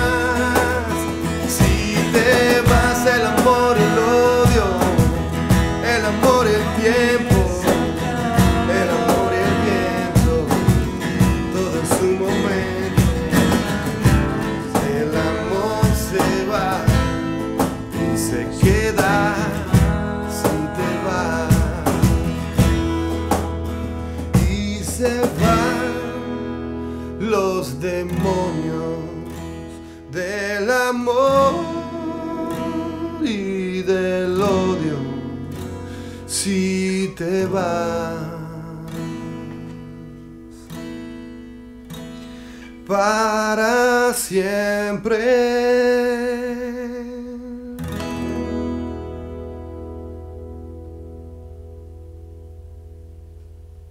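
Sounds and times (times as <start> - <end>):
male lead vocal: 0.0 - 23.1, 24.1 - 40.7, 42.6 - 49.1
percussive hits: 0.0 - 25.8
electric bass: 0.0 - 27.2, 48.0 - 53.9
acoustic guitars strummed: 0.0 - 53.9.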